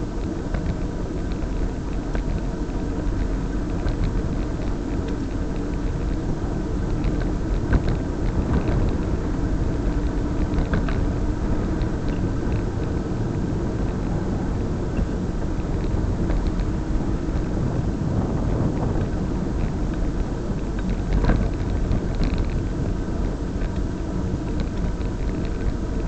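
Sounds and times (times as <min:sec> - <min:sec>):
faint clicks and rattles: 0:00.0 - 0:26.0
road rumble: 0:00.0 - 0:26.0
wind rush on microphone: 0:00.0 - 0:26.0.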